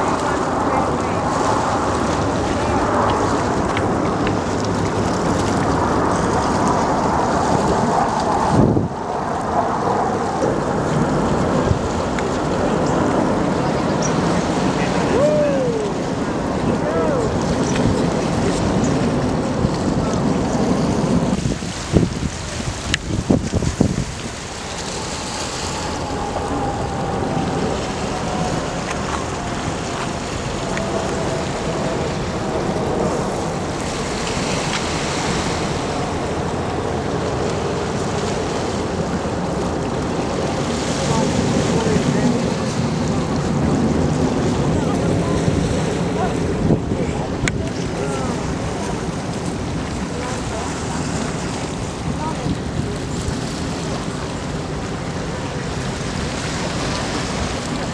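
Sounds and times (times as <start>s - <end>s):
distant jet roar: 0.0s - 57.9s
wind knocking on microphone: 17.4s - 24.6s.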